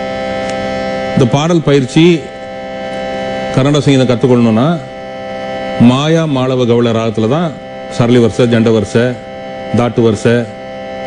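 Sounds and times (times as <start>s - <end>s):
held drone note: 0.0s - 11.0s.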